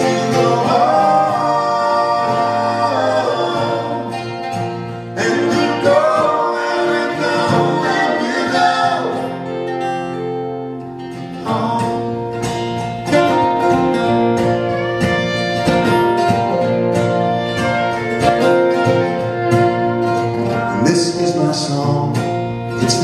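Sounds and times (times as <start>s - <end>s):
acoustic guitar strumming: 0.0s - 23.0s
fiddle playing: 13.1s - 21.1s.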